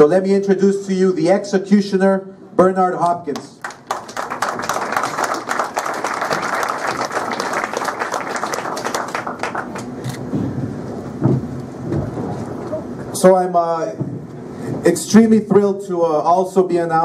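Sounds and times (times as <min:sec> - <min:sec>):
audience applauding: 0:03.6 - 0:10.0.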